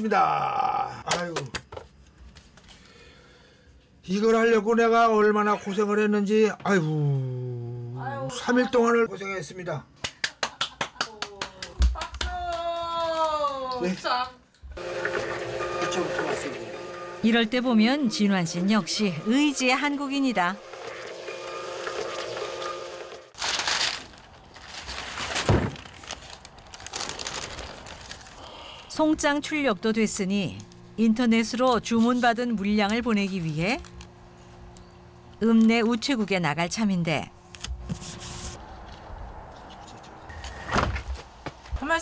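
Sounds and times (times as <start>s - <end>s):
label printer whirring: 14.8s - 23.3s.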